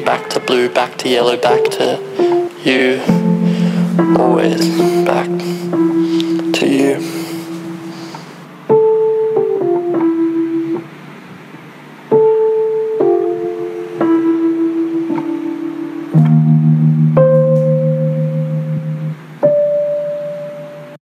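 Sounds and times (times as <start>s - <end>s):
low keyboard chord: 0.0s - 11.0s, 12.1s - 21.0s
sustained keyboard notes: 0.0s - 11.1s, 12.1s - 21.0s.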